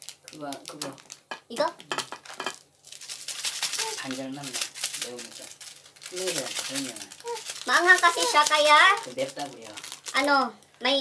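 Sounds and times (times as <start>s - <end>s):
plastic packet crinkling: 0.0s - 11.0s.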